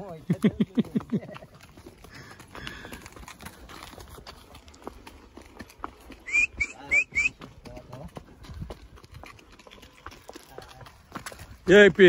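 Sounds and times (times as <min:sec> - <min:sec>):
horse hooves on dirt track: 0:00.0 - 0:12.0.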